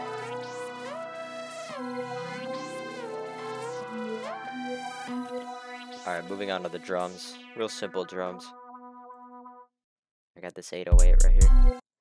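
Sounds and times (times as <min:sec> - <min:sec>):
gliding synthesizer melody: 0:00.0 - 0:09.6.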